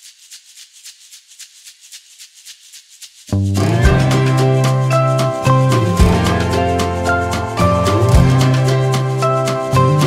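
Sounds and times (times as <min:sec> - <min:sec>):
shaker playing quick rhythm: 0:00.0 - 0:10.0.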